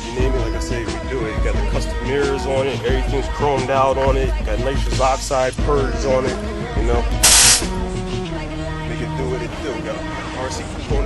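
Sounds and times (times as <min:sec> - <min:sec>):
background music: 0:00.0 - 0:11.0
motorcycle nitrous purge hiss: 0:07.2 - 0:07.8.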